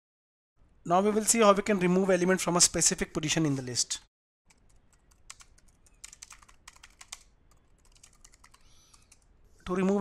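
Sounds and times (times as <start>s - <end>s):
faint keyboard typing: 4.5s - 10.0s.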